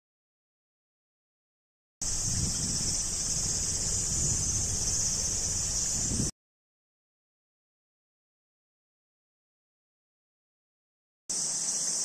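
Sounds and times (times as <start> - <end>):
cicadas singing: 2.0 - 6.3, 11.3 - 12.0
wind buffeting on microphone: 2.0 - 6.3.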